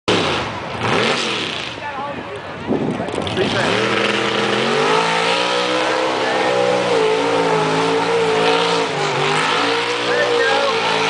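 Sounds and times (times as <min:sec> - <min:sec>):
truck engine revving: 0:00.1 - 0:02.0, 0:02.8 - 0:11.0
spectators' voices: 0:05.4 - 0:11.0.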